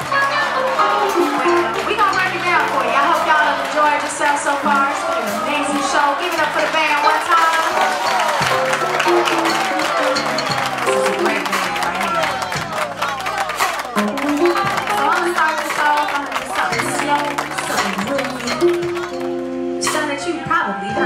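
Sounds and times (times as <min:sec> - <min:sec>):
live band playing: 0:00.0 - 0:21.0
woman singing into microphone: 0:19.8 - 0:21.0.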